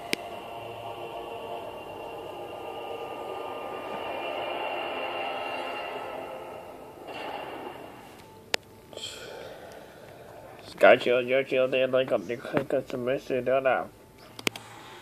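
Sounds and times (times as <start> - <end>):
layered tonal drone: 0.0 - 10.5.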